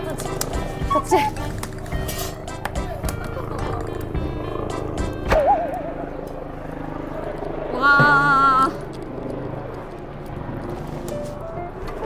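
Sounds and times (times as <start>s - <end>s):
background music: 0.0s - 7.4s, 10.8s - 12.0s
helicopter rotor beating: 0.0s - 12.0s
person laughing: 2.8s - 4.0s.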